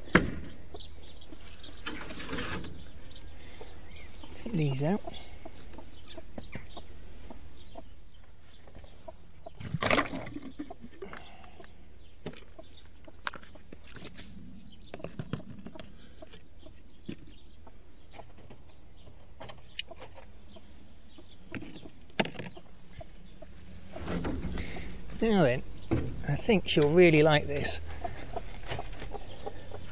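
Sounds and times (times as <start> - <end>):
hen clucking: 0.0 - 29.9.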